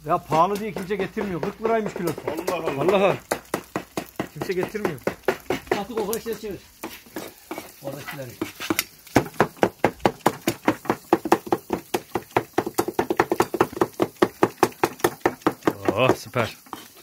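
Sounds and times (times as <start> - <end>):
cleaver chopping on cutting board: 0.3 - 6.1, 8.4 - 16.2.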